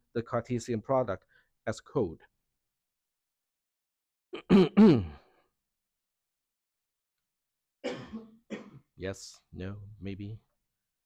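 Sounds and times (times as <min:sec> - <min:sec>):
man clearing his throat: 0:04.4 - 0:05.3, 0:07.8 - 0:08.9.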